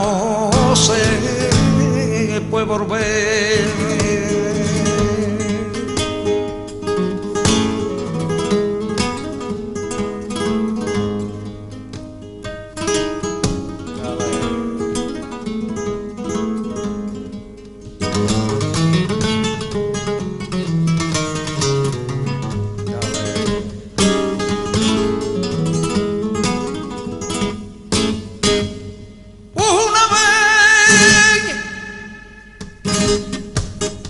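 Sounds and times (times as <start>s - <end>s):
flamenco acoustic guitar: 0.0s - 34.0s.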